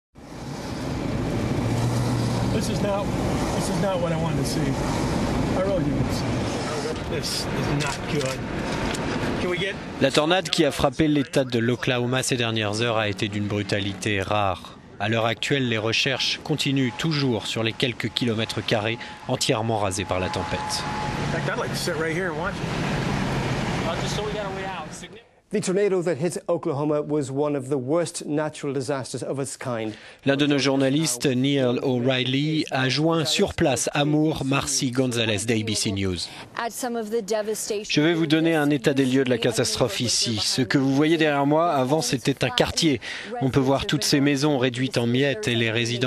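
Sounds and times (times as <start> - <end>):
steady outdoor rumbling: 0.2 - 25.2
dense background noise: 0.4 - 25.3, 30.2 - 46.0
indistinct voices: 5.5 - 22.6, 29.9 - 46.0
person speaking: 10.0 - 22.0, 29.6 - 46.0.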